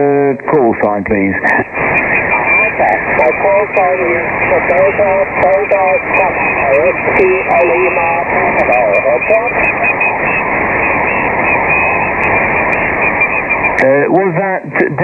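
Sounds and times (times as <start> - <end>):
garbled radio voice: 0.0 - 15.0
radio static and hiss: 0.0 - 15.0.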